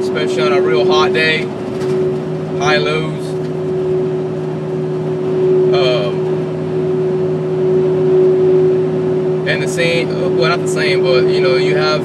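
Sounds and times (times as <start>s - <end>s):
road and engine noise: 0.0s - 12.0s.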